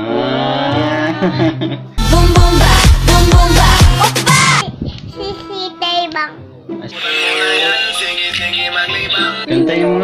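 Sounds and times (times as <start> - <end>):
light music: 1.2 - 10.0
dance track with heavy bass beat: 2.1 - 4.6
child singing: 3.1 - 6.4.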